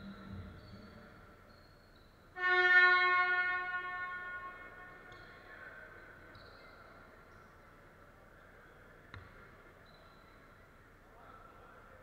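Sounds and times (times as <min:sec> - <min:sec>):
scoreboard horn blast: 0:02.4 - 0:05.1.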